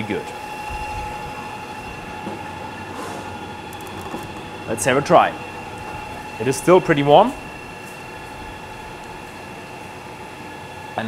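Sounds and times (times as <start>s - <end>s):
machinery hum: 0.0s - 11.0s
whining tones: 0.0s - 11.0s.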